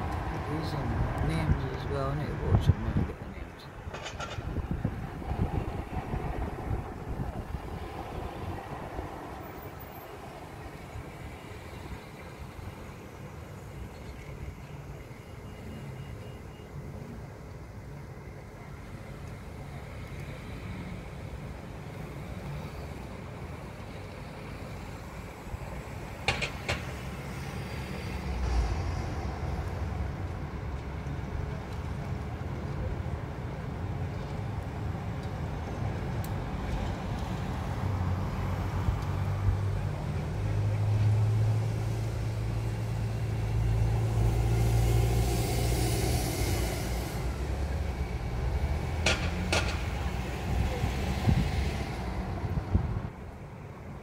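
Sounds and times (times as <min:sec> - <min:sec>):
low rumble of road traffic: 0:00.0 - 0:54.0.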